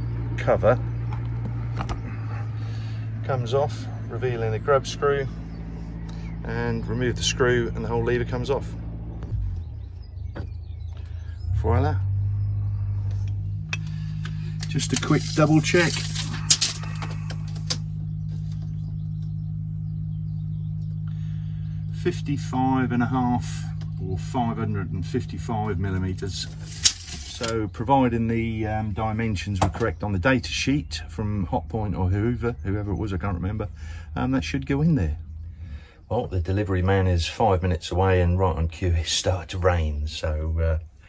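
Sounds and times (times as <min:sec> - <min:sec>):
steady low hum: 0:00.0 - 0:41.0.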